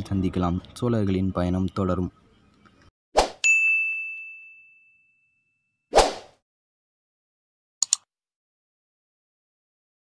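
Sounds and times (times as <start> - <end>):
bright bell-like ding: 3.4 - 5.7.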